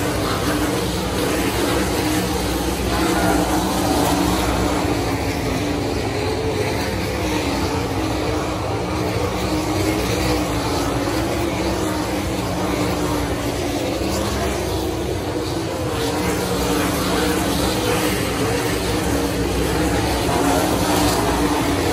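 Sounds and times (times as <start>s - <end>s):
race car engines droning: 0.0s - 21.9s.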